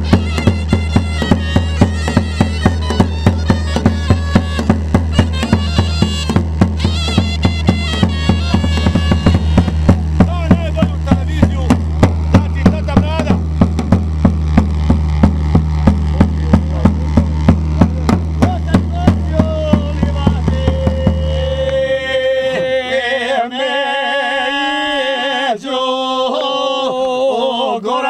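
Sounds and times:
large drum beating: 0:00.0 - 0:22.0
wooden pipe melody: 0:00.0 - 0:23.0.

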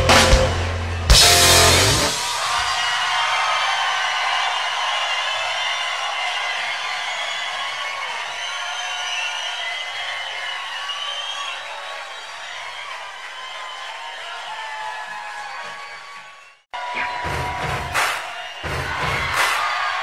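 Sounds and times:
audience cheering and applauding: 0:00.0 - 0:20.0
whoops: 0:02.2 - 0:20.0.

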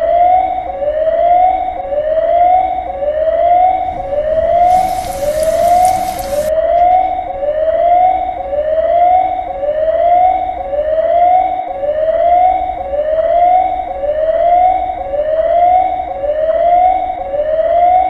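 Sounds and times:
emergency siren whooping: 0:02.6 - 0:06.5.

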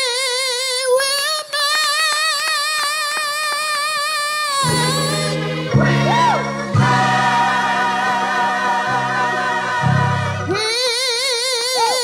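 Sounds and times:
gospel choir singing: 0:04.6 - 0:11.0.

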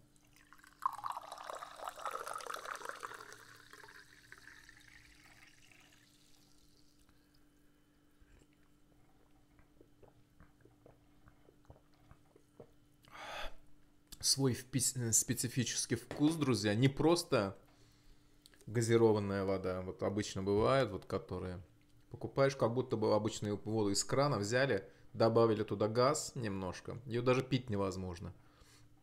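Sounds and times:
fizzy water pouring into glass: 0:00.0 - 0:07.5.

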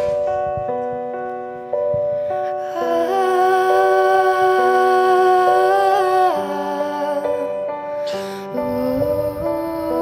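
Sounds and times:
sustained keyboard chords: 0:00.0 - 0:10.0
girl singing long note: 0:02.5 - 0:10.0.

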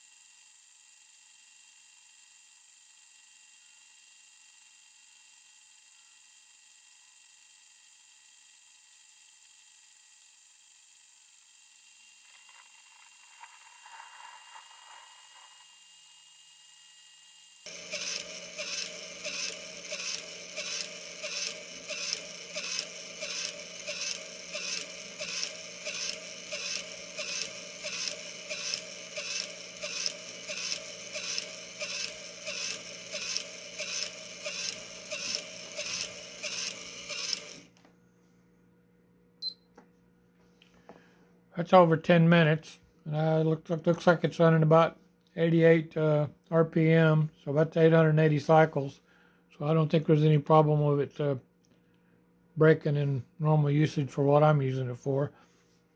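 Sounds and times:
gear motor whine: 0:00.0 - 0:37.8
high-pitched whine: 0:12.2 - 0:17.0.

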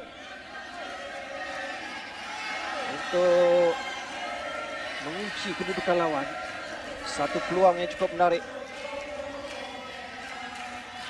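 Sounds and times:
sports hall crowd hubbub: 0:00.0 - 0:11.0.

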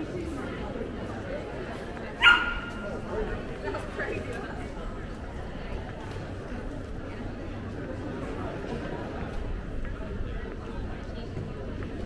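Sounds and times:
murmur of people talking: 0:00.0 - 0:12.0
small dog barking: 0:02.2 - 0:02.8.

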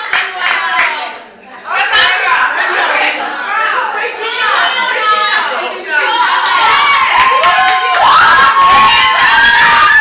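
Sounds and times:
women cheering and shouting: 0:03.5 - 0:10.0.

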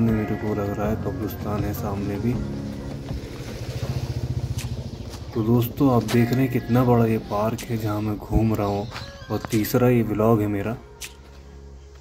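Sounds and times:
vehicle engine running: 0:01.4 - 0:07.4.

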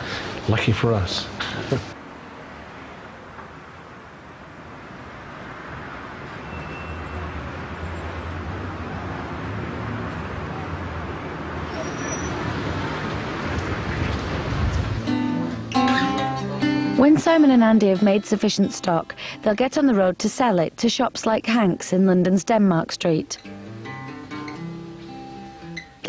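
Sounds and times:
city street traffic: 0:00.0 - 0:26.0.

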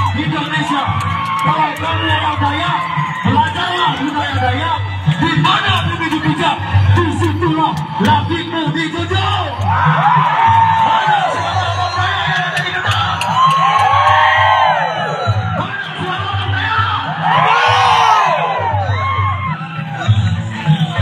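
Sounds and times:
crowd of men whooping and shouting: 0:00.0 - 0:21.0
music with pulsing low beat: 0:00.0 - 0:21.0.

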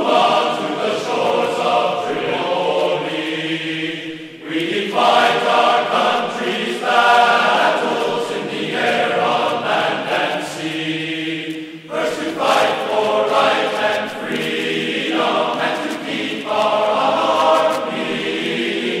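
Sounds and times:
choir singing held notes: 0:00.0 - 0:19.0.

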